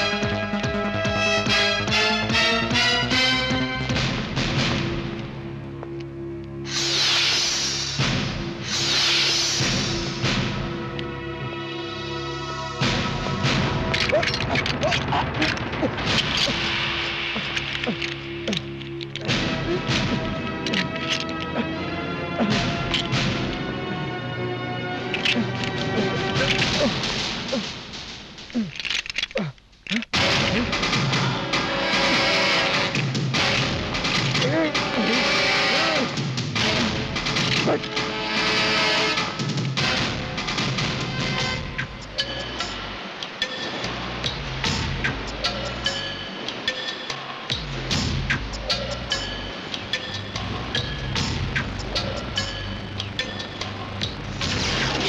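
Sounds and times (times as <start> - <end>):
action film score: 0.0 - 55.0
sharp percussive hits and crashes: 39.2 - 55.0.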